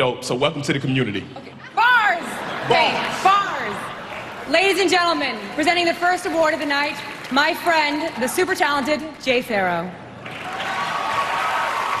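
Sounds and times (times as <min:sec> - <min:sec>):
audience applauding: 0:02.7 - 0:08.5, 0:10.2 - 0:12.0.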